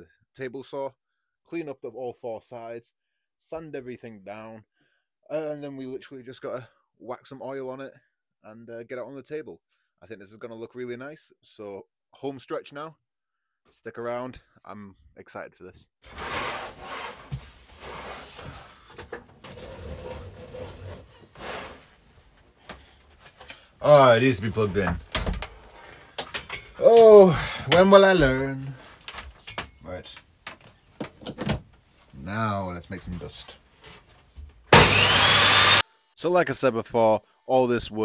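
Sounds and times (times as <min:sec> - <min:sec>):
table saw motor spinning up: 0:34.7 - 0:36.2, 0:37.0 - 0:37.7.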